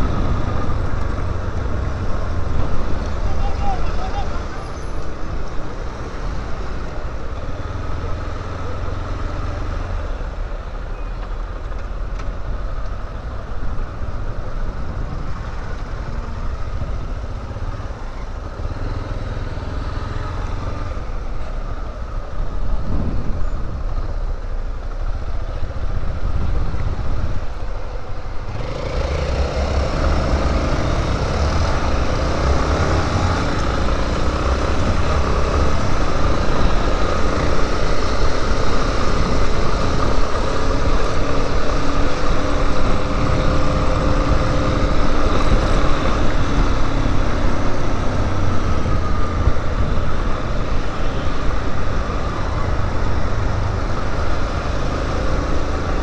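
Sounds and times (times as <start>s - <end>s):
wind noise on microphone: 22.3s - 24.4s, 25.6s - 28.7s, 29.6s - 56.0s.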